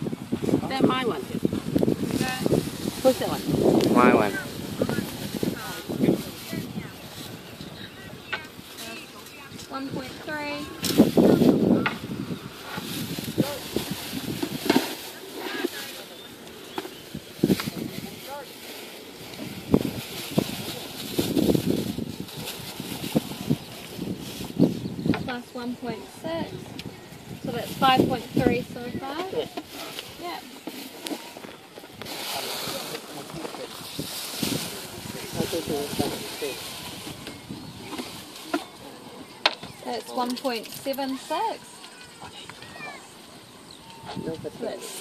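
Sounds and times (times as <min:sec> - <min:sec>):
indistinct voices talking: 0:00.0 - 0:22.6, 0:23.5 - 0:45.0
plastic bags rustling: 0:00.6 - 0:43.2.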